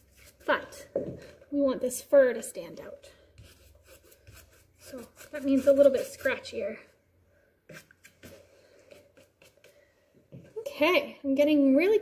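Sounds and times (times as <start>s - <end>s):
dry paintbrush scratching canvas: 0.0s - 0.6s, 3.4s - 6.8s, 7.7s - 9.8s.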